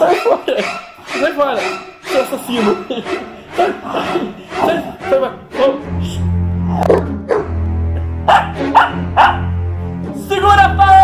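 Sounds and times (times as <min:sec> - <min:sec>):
background music with low bass: 0:01.3 - 0:11.0
small dog yapping: 0:08.3 - 0:09.4.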